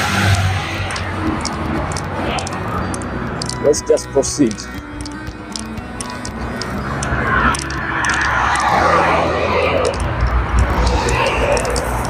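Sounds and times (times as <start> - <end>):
background music: 0.0 - 12.0
road traffic passing: 0.0 - 12.0.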